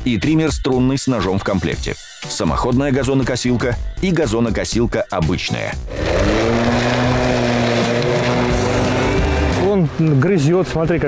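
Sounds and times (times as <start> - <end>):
electric lawn mower running: 5.9 - 9.6.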